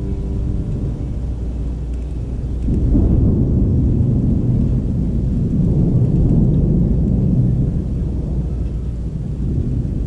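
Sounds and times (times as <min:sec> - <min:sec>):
rain: 0:00.0 - 0:10.0
thunder rumbling: 0:00.0 - 0:10.0.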